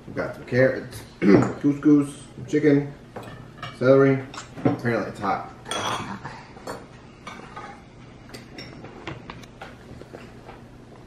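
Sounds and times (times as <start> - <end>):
cutlery clinking on ceramic bowls: 5.6 - 8.8.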